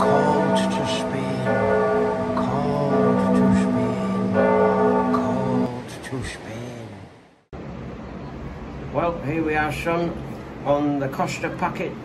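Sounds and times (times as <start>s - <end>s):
church bells ringing: 0.0s - 5.8s.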